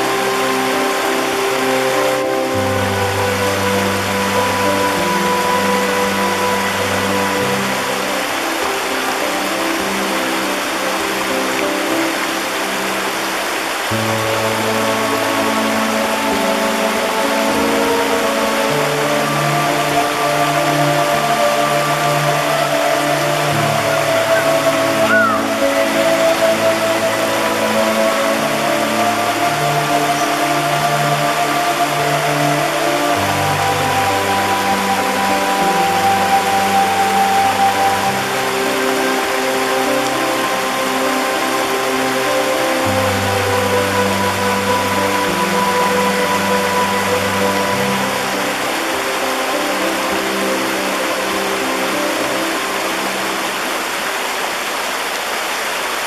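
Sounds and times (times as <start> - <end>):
ambient music chords: 0.0 - 55.3
stream rushing over rocks: 0.0 - 56.0.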